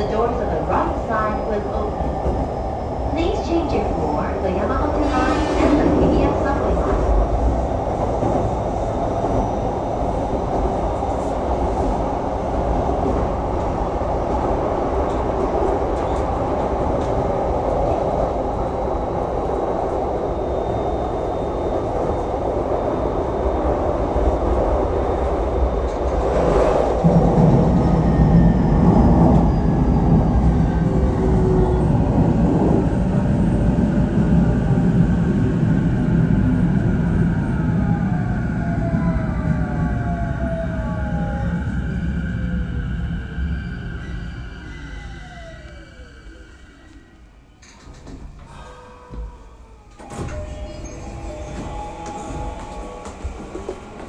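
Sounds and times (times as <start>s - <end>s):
train wheels rumbling on track: 47.6s - 54.0s.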